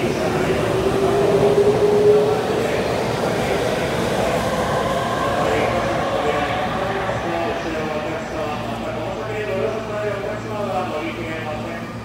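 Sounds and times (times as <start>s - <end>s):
train rail rumble: 0.0s - 12.0s.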